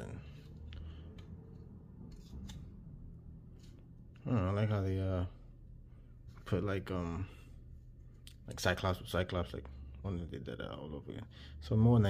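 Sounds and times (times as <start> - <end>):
cardboard cards sliding together: 0.4 - 2.8.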